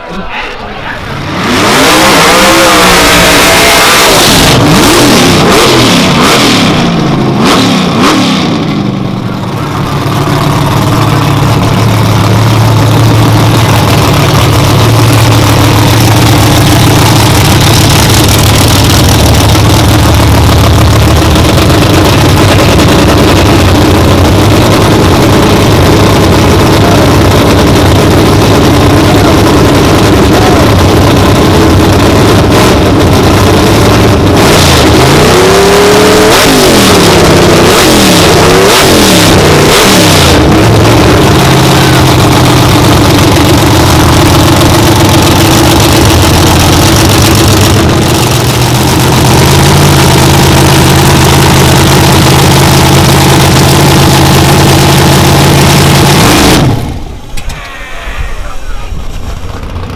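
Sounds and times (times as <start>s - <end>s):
race car engine revving: 0.7s - 57.6s, 58.5s - 59.9s.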